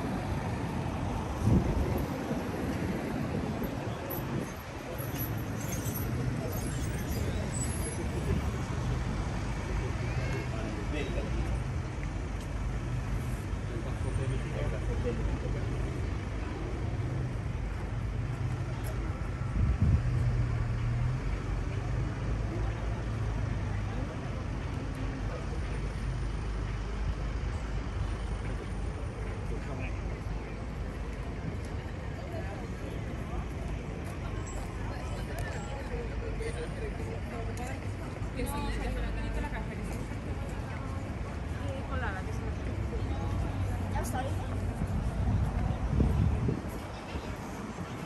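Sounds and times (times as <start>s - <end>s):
road traffic rumble: 0.0s - 48.0s.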